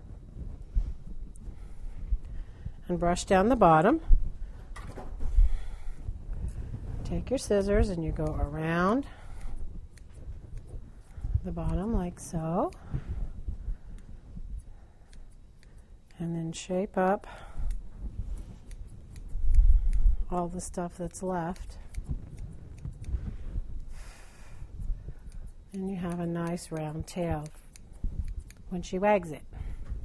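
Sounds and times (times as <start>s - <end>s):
scissors snipping hair: 7.1s - 13.3s, 13.9s - 23.9s, 24.6s - 29.6s.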